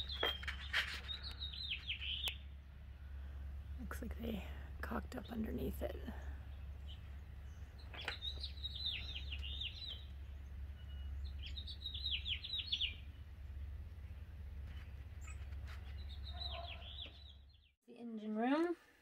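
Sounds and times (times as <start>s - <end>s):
steady low rumble: 0.0s - 16.4s
songbird chirping: 0.0s - 18.7s.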